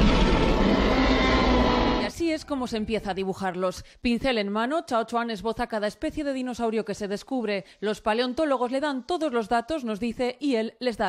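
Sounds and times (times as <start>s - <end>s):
dinosaur roar: 0.0s - 2.2s.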